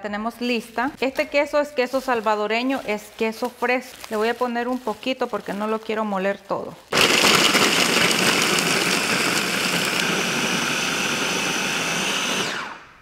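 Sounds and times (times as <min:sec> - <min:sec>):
food chopper grinding: 0:06.9 - 0:13.0.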